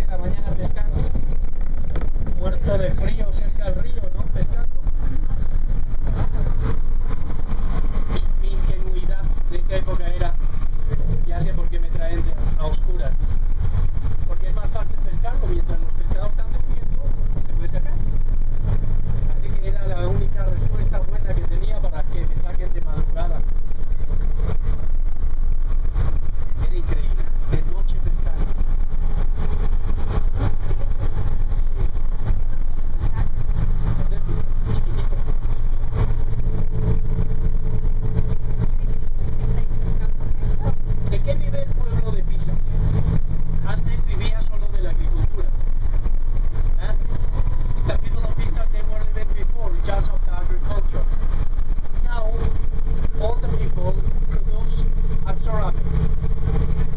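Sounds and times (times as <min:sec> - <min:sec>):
bus engine drone: 0:00.0 - 0:56.9.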